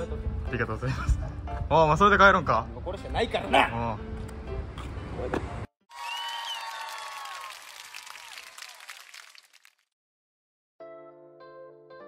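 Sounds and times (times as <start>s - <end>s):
crowd cheering: 5.9s - 9.7s
crowd applause: 5.9s - 9.8s.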